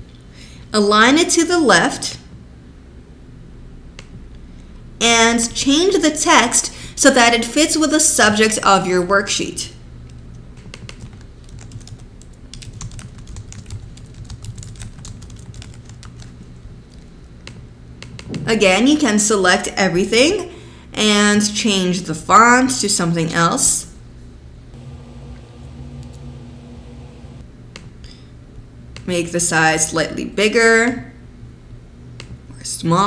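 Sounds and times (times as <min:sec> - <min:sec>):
low room tone hum: 0:00.0 - 0:33.0
typing on computer keyboard: 0:10.6 - 0:18.3
steady low hum: 0:24.0 - 0:29.1.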